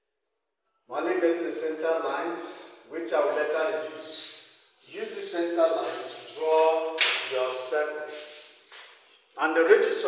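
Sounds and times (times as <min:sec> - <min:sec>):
man speaking: 0:00.9 - 0:08.4, 0:09.4 - 0:10.0.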